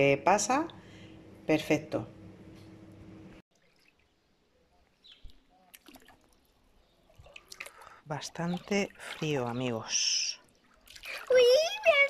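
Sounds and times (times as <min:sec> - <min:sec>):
steady low hum: 0:00.0 - 0:03.4
pool water splashing: 0:03.5 - 0:12.0.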